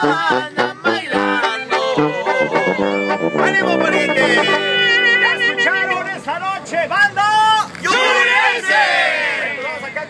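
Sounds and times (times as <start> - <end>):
brass band playing: 0.0 - 7.4.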